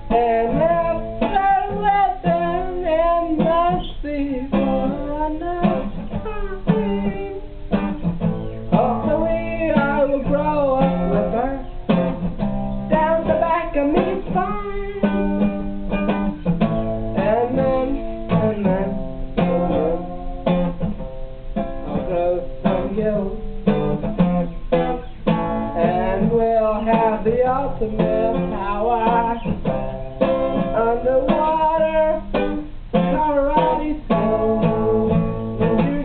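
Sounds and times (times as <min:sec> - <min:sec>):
person singing: 0:00.0 - 0:08.0, 0:08.7 - 0:12.0, 0:12.9 - 0:15.6, 0:17.1 - 0:20.3, 0:21.9 - 0:24.2, 0:25.7 - 0:29.7, 0:30.5 - 0:36.0
acoustic guitar strumming: 0:00.0 - 0:36.0.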